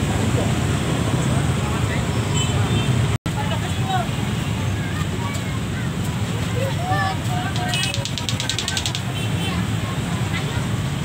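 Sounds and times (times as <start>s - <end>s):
crowd chatter: 3.3s - 11.0s
motorcycle engines idling: 7.3s - 9.3s.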